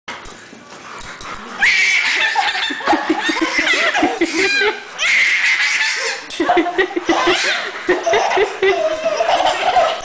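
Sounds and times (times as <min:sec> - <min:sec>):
puppies yipping and whining: 0:01.3 - 0:06.3, 0:07.1 - 0:10.0
person laughing: 0:02.2 - 0:04.9, 0:06.0 - 0:10.0.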